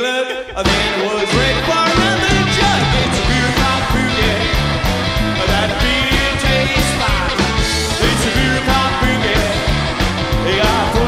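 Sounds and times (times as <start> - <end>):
electric guitar: 0.0 - 11.0
man singing: 0.0 - 11.0
plucked double bass: 0.6 - 11.0
steady drum beat: 0.6 - 11.0.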